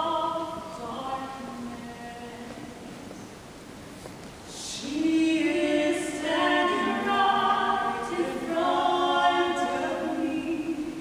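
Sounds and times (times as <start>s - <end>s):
mixed choir singing a cappella: 4.6s - 11.0s.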